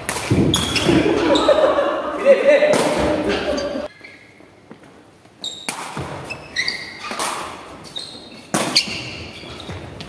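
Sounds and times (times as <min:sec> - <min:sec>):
players calling out in echoing hall: 0:00.2 - 0:04.3.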